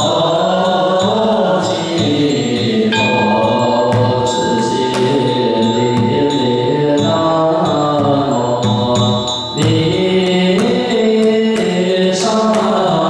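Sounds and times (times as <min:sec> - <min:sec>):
group chanting in unison: 0:00.0 - 0:09.1
ringing bell: 0:00.0 - 0:13.0
temple drum strokes: 0:02.7 - 0:09.0.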